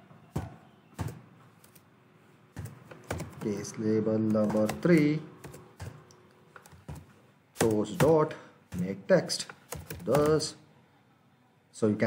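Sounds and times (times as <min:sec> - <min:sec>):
computer keyboard keystrokes: 0:02.6 - 0:10.5
person speaking: 0:02.6 - 0:10.8.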